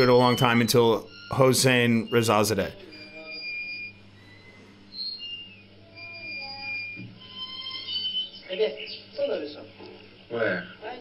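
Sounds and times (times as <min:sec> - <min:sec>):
quiet background music: 0:00.0 - 0:11.0
steady low hum: 0:00.0 - 0:11.0.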